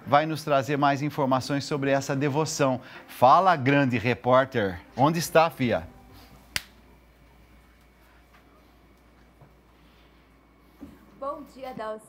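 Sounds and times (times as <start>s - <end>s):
sharp snap: 6.5s - 6.8s.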